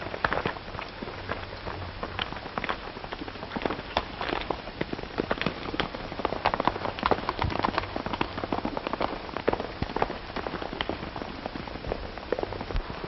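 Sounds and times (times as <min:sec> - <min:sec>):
galloping horse hooves clattering: 0:00.0 - 0:13.0.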